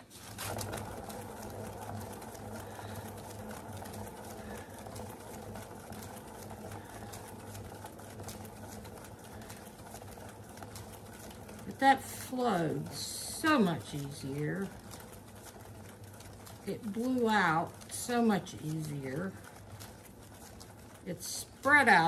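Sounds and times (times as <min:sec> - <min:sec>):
motorised paint spinner whirring: 0:00.0 - 0:22.0.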